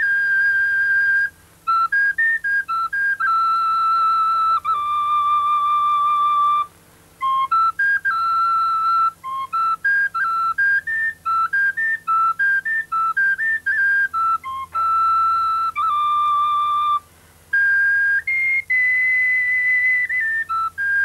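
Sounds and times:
solo flute melody: 0.0 - 21.0.

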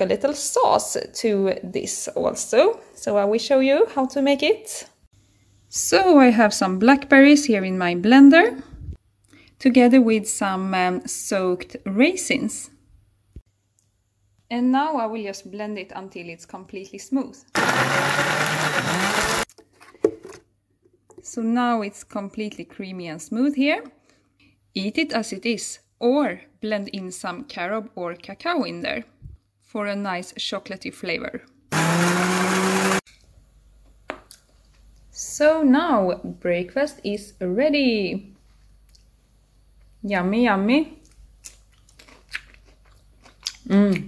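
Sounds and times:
blender running: 17.6 - 19.5, 31.7 - 33.0
person chewing crisp leaf: 41.0 - 43.7.

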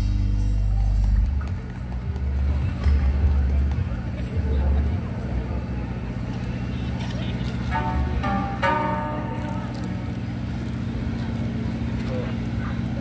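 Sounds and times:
deep bass notes pulsing: 0.0 - 13.0.

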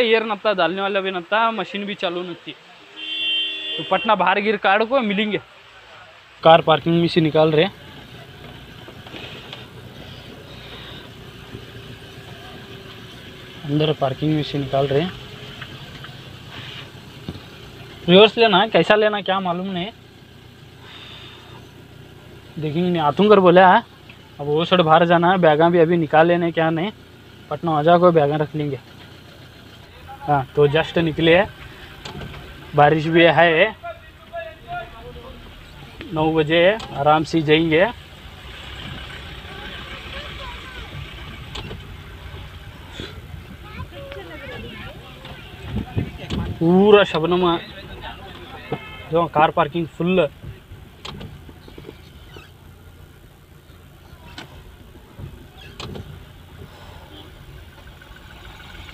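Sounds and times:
rain hiss on wet road: 0.0 - 45.7
car engine idling: 0.0 - 58.9.

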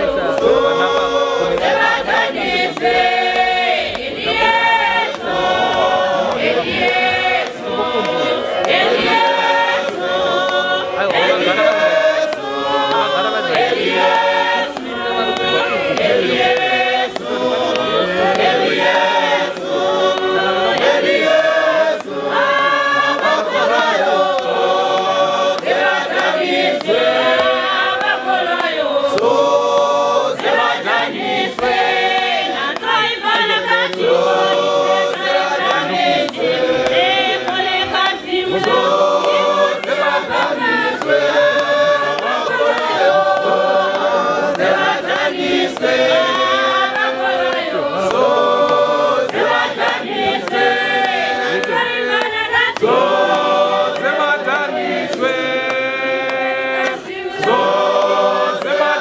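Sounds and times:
congregation singing a cappella: 0.0 - 59.0
sharp hand clap: 0.0 - 59.0.

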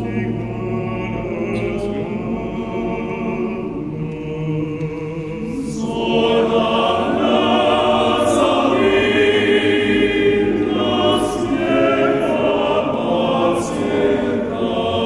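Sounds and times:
men's choir singing a cappella: 0.0 - 15.0.

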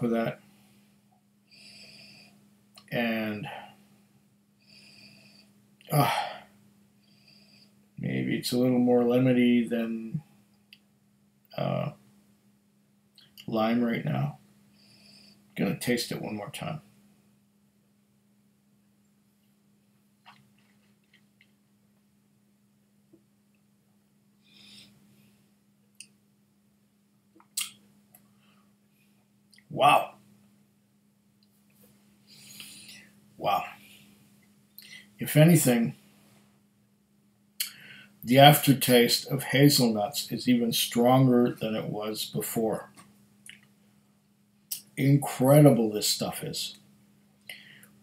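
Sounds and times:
low steady hum: 0.0 - 48.0
faint breathing: 0.4 - 2.5, 3.4 - 8.0, 14.7 - 15.6, 24.4 - 25.6, 28.2 - 29.2, 32.2 - 35.2, 37.6 - 38.2, 47.4 - 48.0
man exhaling: 4.7 - 6.6
soft breath out: 37.6 - 38.2, 47.5 - 48.0.

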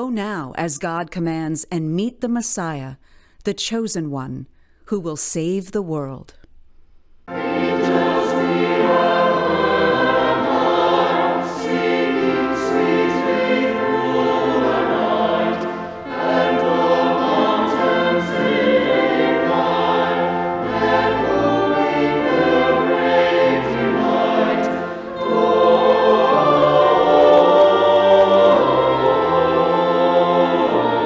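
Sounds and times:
choir singing with accompaniment: 7.3 - 31.0.

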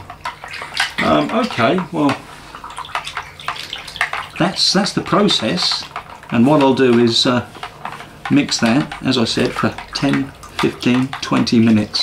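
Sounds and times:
liquid swishing: 0.0 - 12.0
stick clicking against jug: 2.9 - 12.0.

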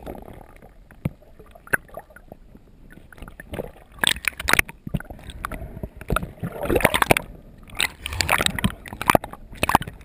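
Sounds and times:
underwater water noise: 0.0 - 10.0.

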